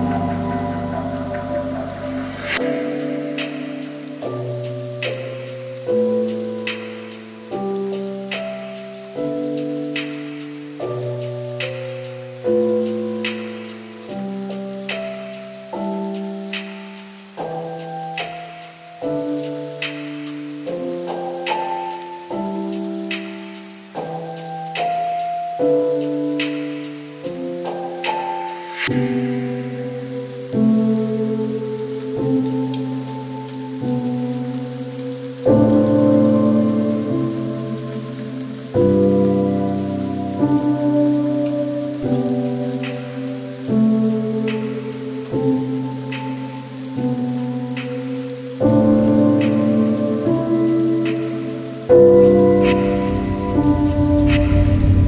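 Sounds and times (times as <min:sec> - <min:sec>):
rain patter: 0:00.0 - 0:55.0
soft piano chords: 0:00.0 - 0:55.0
low rumble of thunder: 0:52.2 - 0:55.0.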